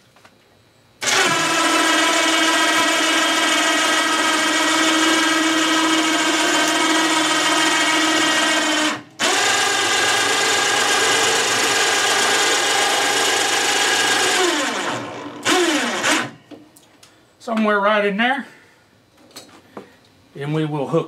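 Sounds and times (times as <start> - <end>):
cordless drill motor running: 1.0 - 16.4.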